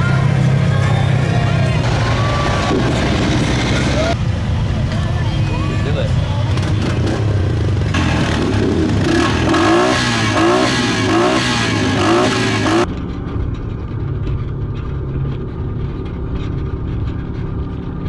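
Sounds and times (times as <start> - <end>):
atv engine revving: 0.0 - 4.7, 5.6 - 12.9
utility vehicle engine running: 0.0 - 18.0.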